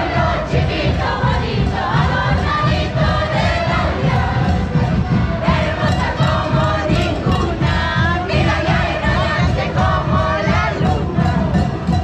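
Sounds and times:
carnival band music: 0.0 - 12.0
women singing in chorus: 0.0 - 12.0.

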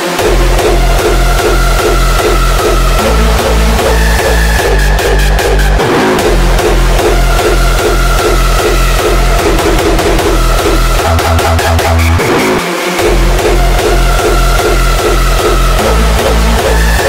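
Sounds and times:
distorted kick drums: 0.0 - 17.0
held synth lead: 0.0 - 17.0.

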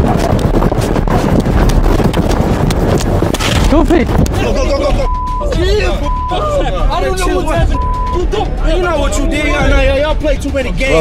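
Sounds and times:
rapid footsteps on pavement: 0.0 - 4.4.

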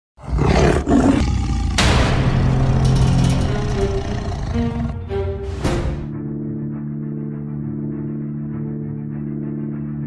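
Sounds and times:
tiger roar: 0.2 - 5.2.

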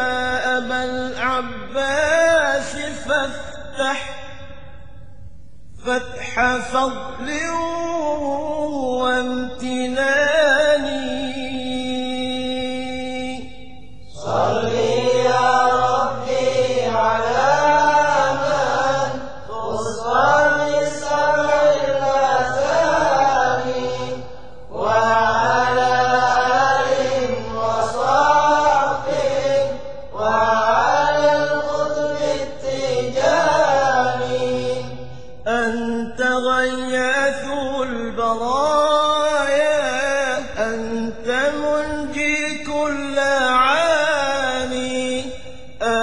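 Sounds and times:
person chanting melodically: 0.0 - 4.6, 5.8 - 46.0.

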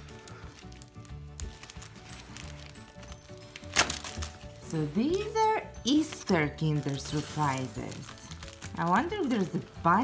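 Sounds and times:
background music: 0.0 - 10.0
foil wrapper crackling: 0.0 - 10.0.

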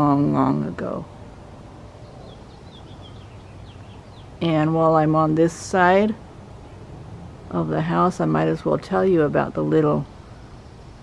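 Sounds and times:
outdoor background noise: 0.0 - 11.0
small bird chirping: 2.0 - 4.4.

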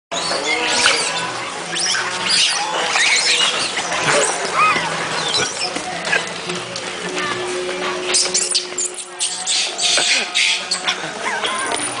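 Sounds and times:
monkeys squealing and chirping: 0.2 - 5.8, 8.1 - 12.0.

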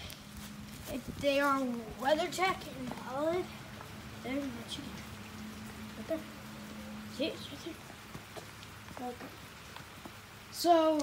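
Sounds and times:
low steady hum: 0.0 - 11.0
steady rain falling: 0.0 - 11.0.

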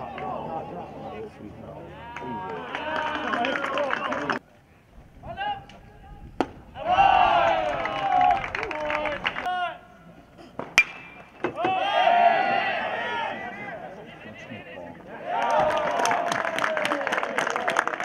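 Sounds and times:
people shouting: 6.8 - 8.7, 11.4 - 13.8
metal bat hitting ball: 10.6 - 11.7.

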